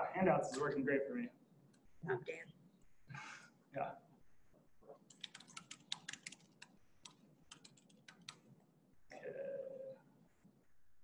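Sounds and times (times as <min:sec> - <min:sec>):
person saying uh: 0:00.0 - 0:01.2, 0:09.2 - 0:09.9
typing on keyboard: 0:05.1 - 0:08.5.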